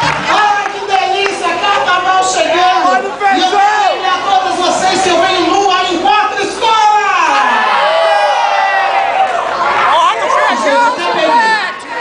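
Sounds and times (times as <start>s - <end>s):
crowd chatter: 0.0s - 12.0s
overlapping voices: 0.0s - 12.0s.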